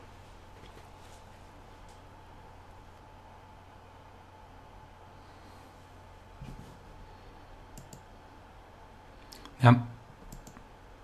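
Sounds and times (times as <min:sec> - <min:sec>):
faint computer mouse clicks: 0:07.7 - 0:08.1, 0:10.3 - 0:10.7.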